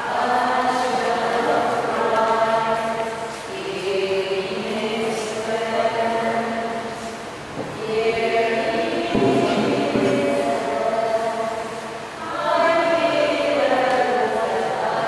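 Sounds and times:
group singing a slow hymn: 0.0 - 15.0
knock: 9.1 - 10.5.

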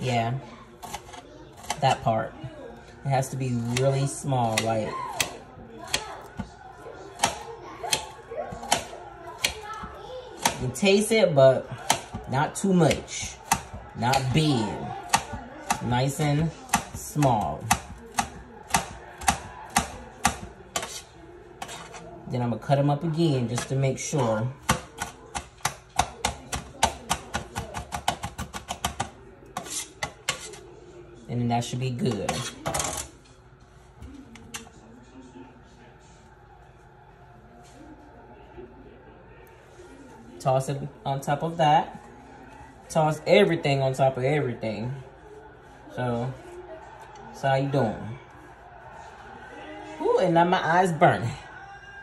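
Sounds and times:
knife chopping on metal tray: 0.8 - 2.0, 3.6 - 6.5, 7.2 - 10.8, 11.8 - 22.0, 23.4 - 23.8, 24.6 - 30.6, 32.1 - 33.1.

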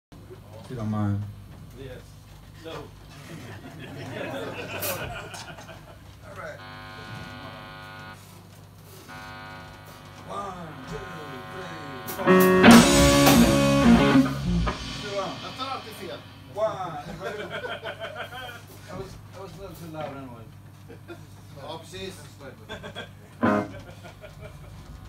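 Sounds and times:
voices talking: 6.3 - 8.2, 9.1 - 17.4
electric guitar notes and chords: 6.6 - 8.2, 9.1 - 16.6, 23.4 - 23.8.

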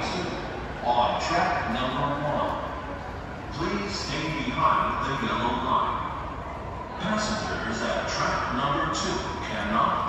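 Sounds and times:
echoing indistinct voices: 0.0 - 10.0.

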